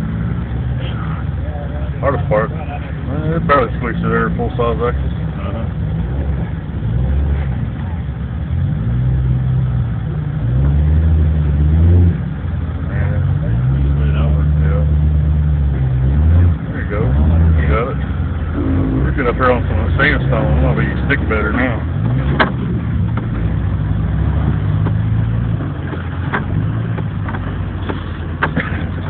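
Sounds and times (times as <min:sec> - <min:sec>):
off-road vehicle engine revving: 0:00.0 - 0:29.0.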